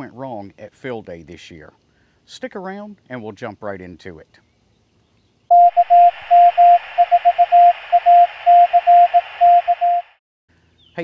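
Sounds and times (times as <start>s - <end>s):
morse code tone: 5.5s - 10.2s
radio hiss: 6.2s - 9.7s.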